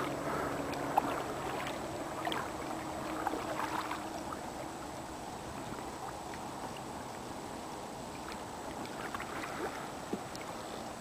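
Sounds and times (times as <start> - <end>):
paddle strokes in water: 0.0 - 11.0
steady light hiss: 0.0 - 11.0.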